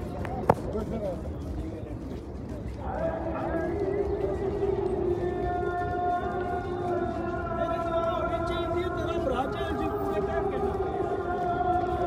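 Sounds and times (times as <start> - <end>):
call to prayer over loudspeakers: 0.0 - 12.0.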